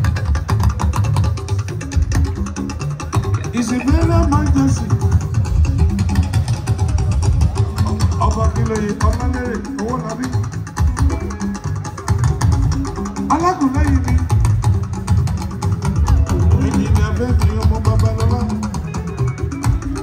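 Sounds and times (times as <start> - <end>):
band music through loudspeakers: 0.0 - 20.0
person singing: 16.3 - 19.0.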